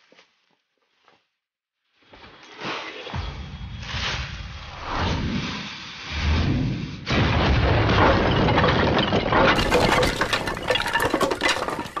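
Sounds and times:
debris crackling and clattering: 7.2 - 12.0
glass breaking: 8.0 - 12.0.

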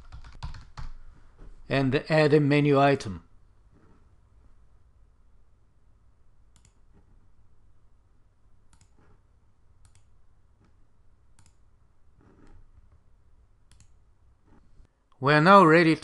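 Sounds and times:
computer mouse clicks: 6.5 - 7.2, 8.7 - 9.2, 9.8 - 11.6, 13.7 - 14.0.

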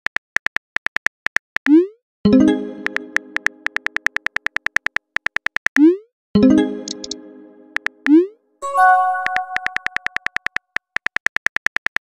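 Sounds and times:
phone keyboard typing clicks: 2.8 - 5.8, 6.8 - 8.2, 9.0 - 12.0.

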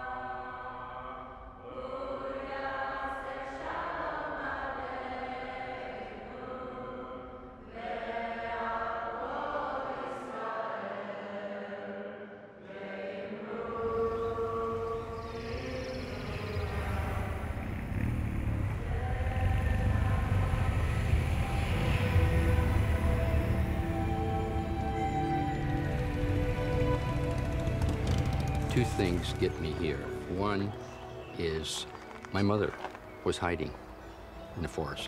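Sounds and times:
slow choral chanting: 0.0 - 32.1
motorcycle engines rumbling: 13.8 - 35.0.

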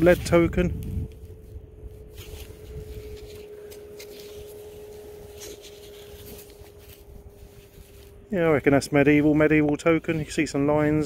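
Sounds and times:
faint steady hum: 0.0 - 11.0
low rumble: 0.0 - 11.0.

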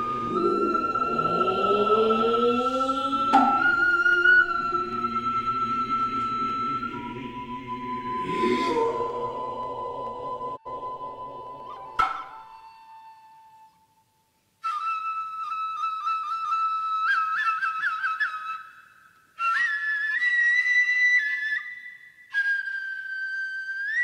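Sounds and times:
shrill flute phrases: 0.0 - 24.0.

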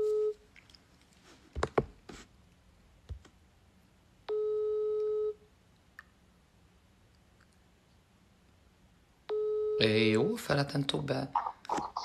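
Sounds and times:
telephone ringback beep: 4.3 - 5.4, 9.3 - 10.0.

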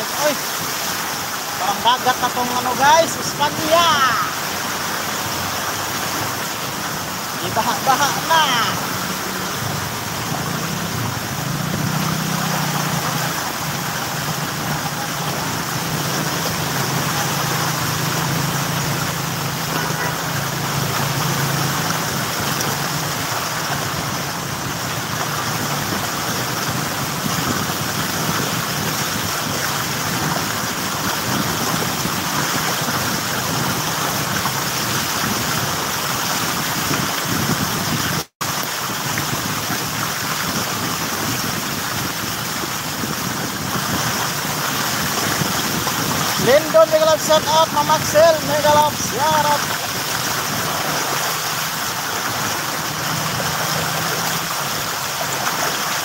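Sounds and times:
water sprayed by wheels: 0.0 - 56.0.

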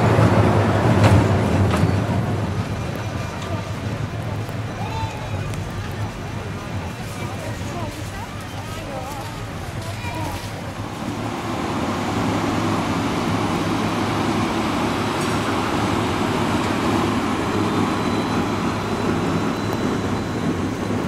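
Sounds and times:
tram wheels rumbling on rails: 0.0 - 21.0.

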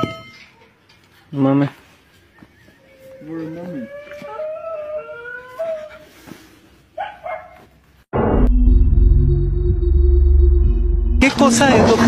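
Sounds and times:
dog howling: 2.8 - 6.1
dog yelps: 7.0 - 7.7
loud low rumble with steady tones: 8.2 - 11.3.

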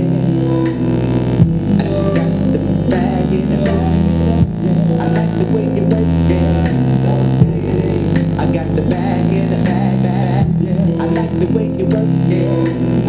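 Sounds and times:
sampler melody line: 0.0 - 13.0
sustained low bass notes: 0.0 - 13.0.

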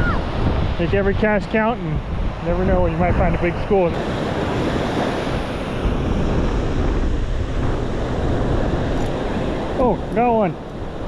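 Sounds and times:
ocean surf breaking: 0.0 - 11.0
wind buffeting microphone: 0.0 - 11.0.

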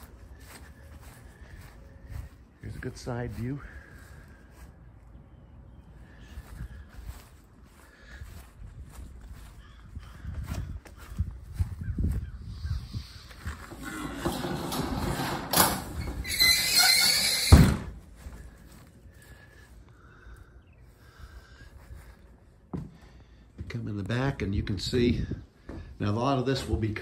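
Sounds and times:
footsteps: 0.0 - 5.1, 6.2 - 19.9, 20.8 - 24.2.

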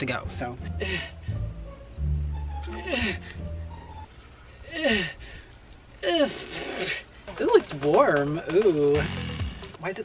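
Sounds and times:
background music: 0.0 - 4.2, 7.2 - 10.0
person's breathy cries: 2.6 - 3.4, 4.6 - 5.4.

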